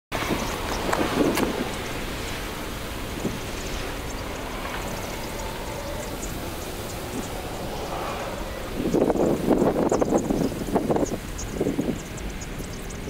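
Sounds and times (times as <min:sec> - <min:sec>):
low rumble: 0:00.1 - 0:13.0.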